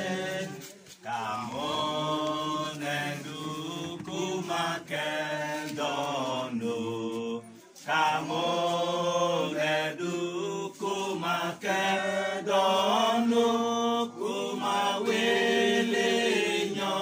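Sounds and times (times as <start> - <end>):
unaccompanied voices chanting: 0.0 - 17.0.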